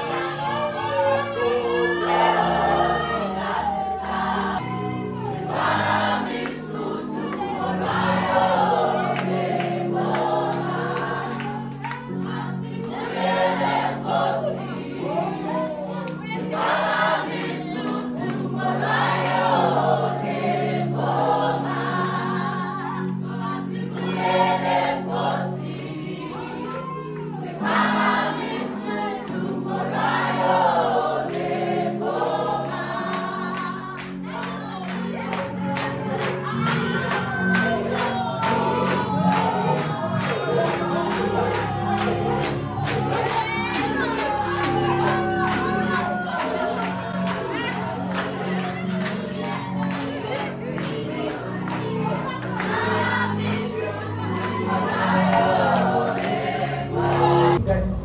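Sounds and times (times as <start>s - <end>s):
group singing gospel song: 0.0s - 58.0s.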